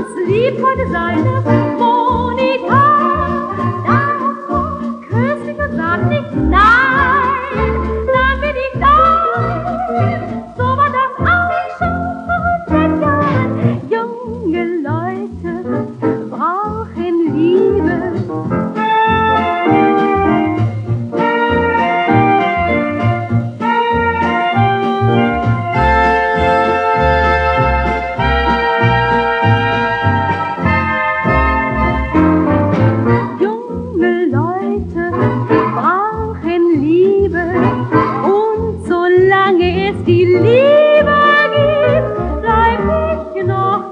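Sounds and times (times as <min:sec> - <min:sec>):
orchestra on gramophone record: 0:00.0 - 0:43.9.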